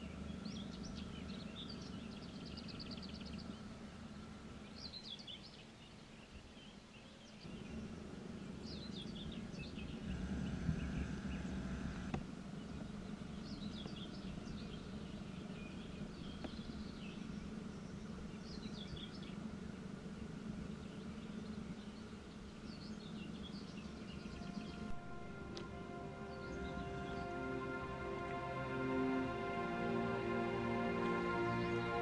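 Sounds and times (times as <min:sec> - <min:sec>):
low background rumble: 0:00.0 - 0:05.5, 0:07.4 - 0:32.0
songbird singing: 0:00.0 - 0:32.0.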